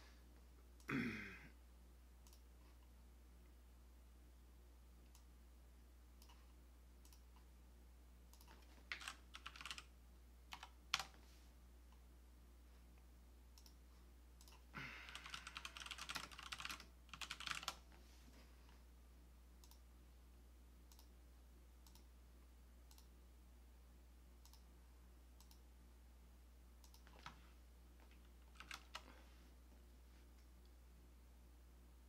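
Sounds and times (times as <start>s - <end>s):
low steady hum: 0.0s - 32.0s
keyboard typing: 8.3s - 9.9s, 10.5s - 11.2s, 14.4s - 17.9s, 28.0s - 29.1s.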